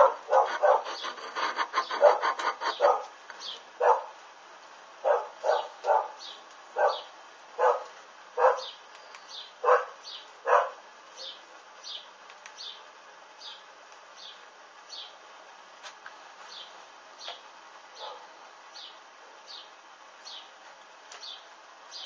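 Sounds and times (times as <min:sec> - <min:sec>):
dog barking: 0:00.0 - 0:01.0, 0:01.8 - 0:03.1, 0:03.8 - 0:04.2, 0:05.0 - 0:06.2, 0:06.8 - 0:08.8, 0:09.6 - 0:11.4, 0:18.0 - 0:18.3.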